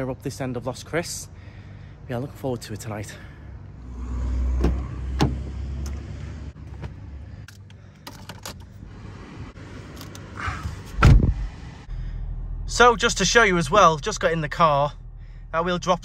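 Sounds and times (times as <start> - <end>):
car door shutting: 4.5 - 7.0, 10.8 - 11.5.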